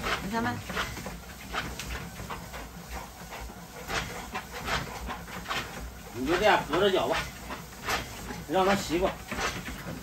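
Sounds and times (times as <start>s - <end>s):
dog panting: 0.0s - 10.0s
treadmill rumble: 0.0s - 10.0s.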